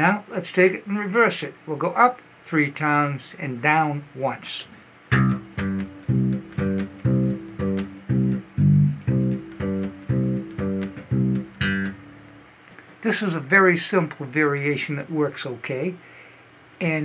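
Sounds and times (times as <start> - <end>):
electric bass guitar notes: 5.1 - 12.6.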